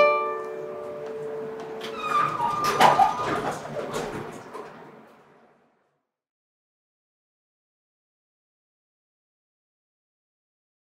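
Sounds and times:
classical guitar chord ringing: 0.0 - 1.7
elevator doors sliding shut: 0.8 - 5.8.

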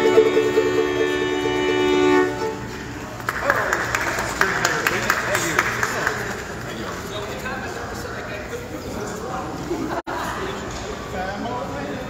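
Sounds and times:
people talking in echoing hall: 0.0 - 12.0.

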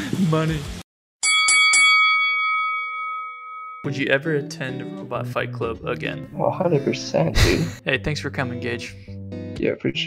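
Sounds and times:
bell ringing: 1.2 - 5.0.

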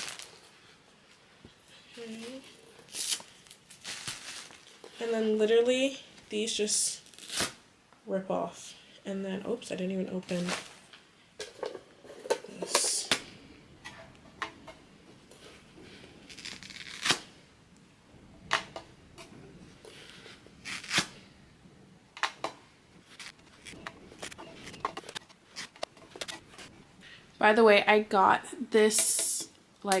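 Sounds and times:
paper towels tearing: 0.0 - 0.4, 7.0 - 7.6, 16.3 - 17.4, 20.0 - 21.3
plastic wrapping crinkling: 0.0 - 0.6, 1.9 - 5.0, 16.2 - 17.4.

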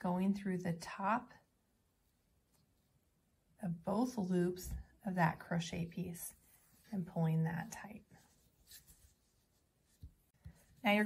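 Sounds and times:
handling yarn: 1.8 - 11.0.

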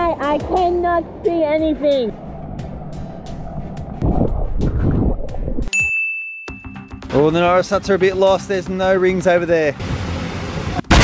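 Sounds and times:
muffled underwater rushing: 0.0 - 5.7
bright ding chime: 5.7 - 7.0.

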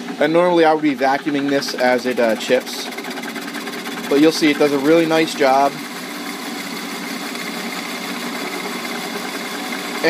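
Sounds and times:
lathe cutting wood: 0.0 - 10.0.

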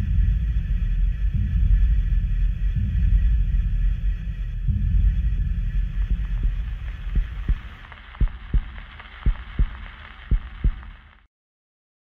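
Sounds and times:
low heartbeat thumps: 0.0 - 11.0
low rumble: 0.0 - 11.2.

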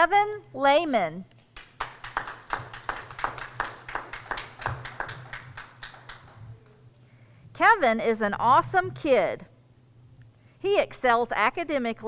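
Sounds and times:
small audience applauding: 1.6 - 6.8.

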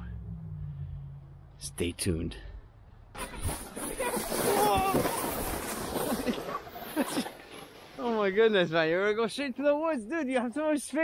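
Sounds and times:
sled hissing on snow: 3.2 - 8.0.

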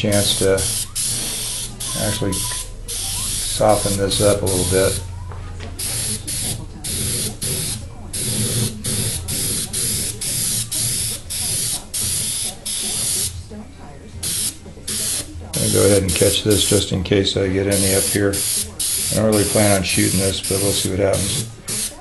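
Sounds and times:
airbrush spraying hiss: 0.0 - 5.1, 5.8 - 13.3, 14.2 - 16.9, 17.7 - 22.0.

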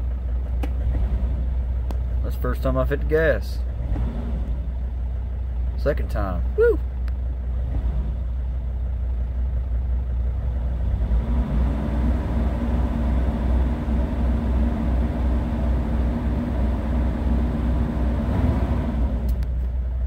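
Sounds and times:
van engine idling and revving: 0.0 - 20.0.

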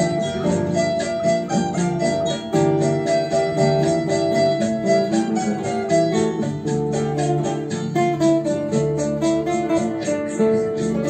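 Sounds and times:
fingerpicked classical guitar: 0.0 - 11.0.

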